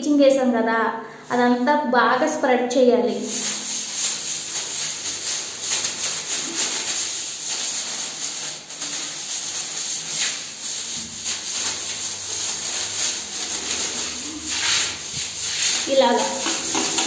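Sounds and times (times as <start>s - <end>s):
broom scrubbing tiled floor: 2.2s - 17.0s.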